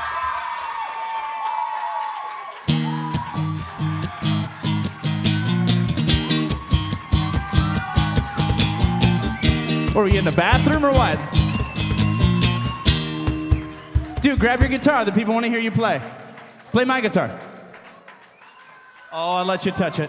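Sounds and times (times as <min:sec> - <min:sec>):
guitar and cajon rhythmic vamp: 0:02.7 - 0:14.9.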